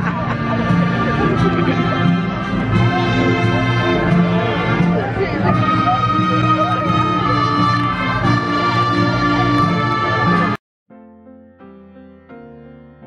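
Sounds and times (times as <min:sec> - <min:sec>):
band music with held notes: 0:00.0 - 0:10.6
crowd chatter: 0:00.0 - 0:10.6.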